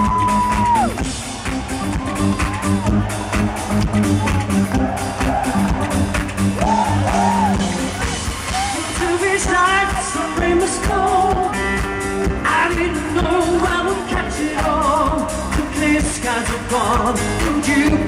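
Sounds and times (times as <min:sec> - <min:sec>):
live pop band: 0:00.0 - 0:18.0
steady drum beat: 0:00.0 - 0:18.0.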